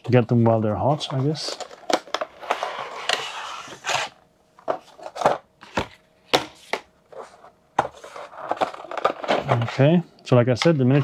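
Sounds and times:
cardboard sliding and rubbing: 0:02.4 - 0:04.2.

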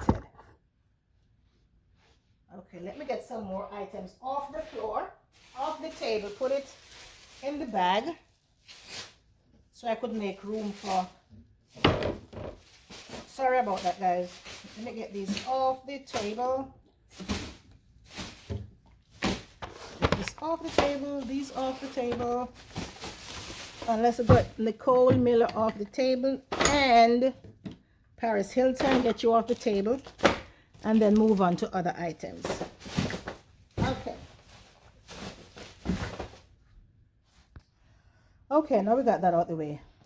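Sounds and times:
packaging knocking and scraping: 0:17.1 - 0:25.5, 0:32.3 - 0:36.5.

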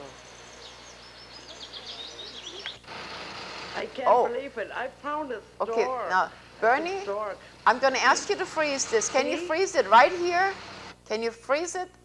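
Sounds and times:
songbird chirping: 0:00.0 - 0:02.9
outdoor background hiss: 0:00.0 - 0:12.0.

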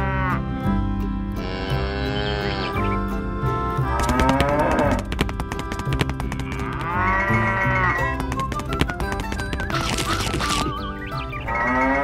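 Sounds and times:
cows mooing: 0:00.0 - 0:00.6, 0:01.4 - 0:03.0, 0:03.8 - 0:05.1, 0:06.4 - 0:08.2, 0:11.4 - 0:12.0
background music with steady beat: 0:02.3 - 0:11.6.

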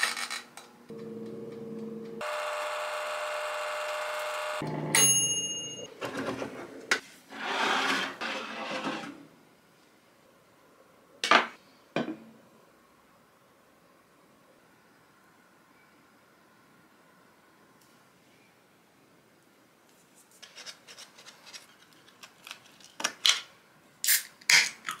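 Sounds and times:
air fryer humming: 0:00.9 - 0:05.9
timer bell ding: 0:04.9 - 0:05.9
metal tray scraping over rack: 0:07.3 - 0:09.2.

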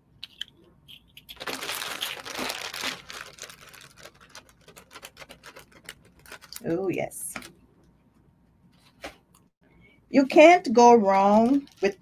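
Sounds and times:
card tag rustling and crinkling: 0:01.3 - 0:06.7.

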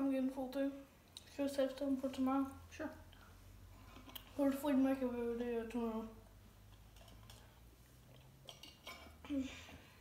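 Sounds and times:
steel tumbler set on table: 0:03.8 - 0:09.2.

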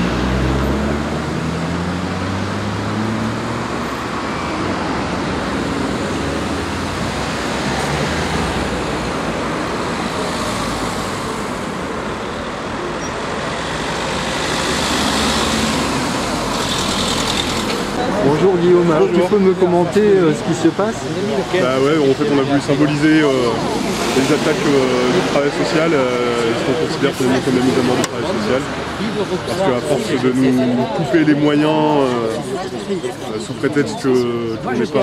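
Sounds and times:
tyre and engine noise: 0:00.0 - 0:35.0
vehicles passing: 0:00.0 - 0:35.0.

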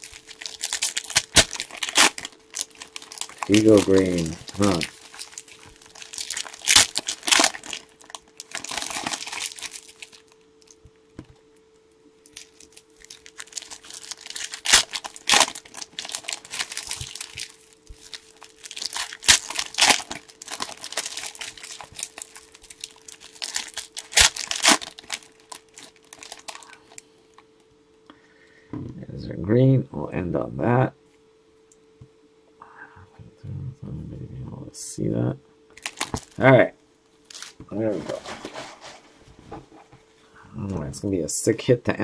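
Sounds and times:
foil wrappers crinkling: 0:00.0 - 0:10.8, 0:12.2 - 0:27.1, 0:35.8 - 0:36.5, 0:37.2 - 0:39.1
faint steady hum: 0:00.0 - 0:42.0.

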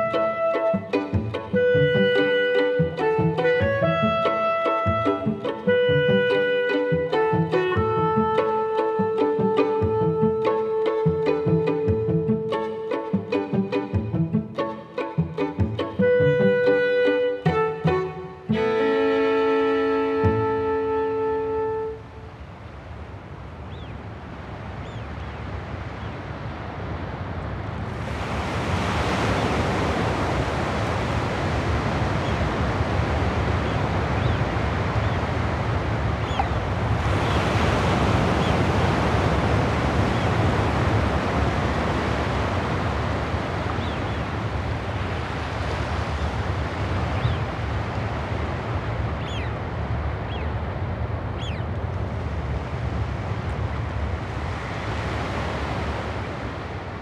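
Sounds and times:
waves washing on shore: 0:00.0 - 0:57.0
faint high bird calls: 0:24.8 - 0:26.2, 0:33.6 - 0:35.3, 0:36.2 - 0:36.6, 0:47.1 - 0:47.4, 0:49.2 - 0:49.6, 0:50.2 - 0:50.6, 0:51.4 - 0:51.7.

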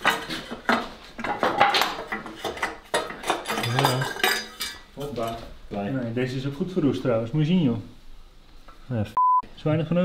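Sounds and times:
metal clanking and clinking: 0:00.0 - 0:05.4.

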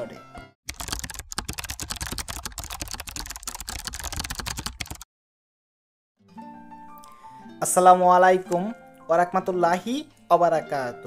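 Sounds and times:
background music: 0:00.0 - 0:00.6, 0:06.2 - 0:11.0
keyboard typing clicks: 0:00.7 - 0:05.0.

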